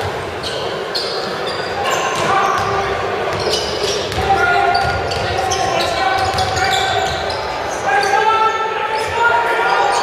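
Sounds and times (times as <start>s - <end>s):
sneaker squeaks: 0.4s - 10.0s.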